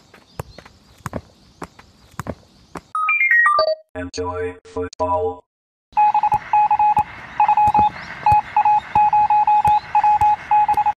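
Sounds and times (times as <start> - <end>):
electronic beeps: 3.0 - 4.5, 6.0 - 11.0.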